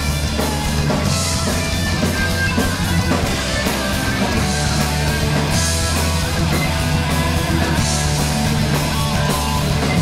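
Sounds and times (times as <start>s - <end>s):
bass guitar: 0.0s - 10.0s
drum kit with cymbals: 0.0s - 10.0s
electric guitar: 0.0s - 10.0s.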